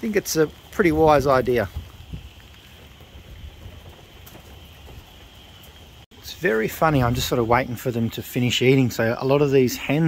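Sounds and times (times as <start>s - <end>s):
faint outdoor hiss: 0.0s - 10.0s
wind buffeting microphone: 0.5s - 7.8s.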